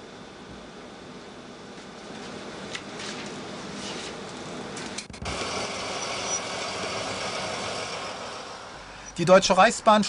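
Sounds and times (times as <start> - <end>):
diesel locomotive running: 4.5 - 10.0.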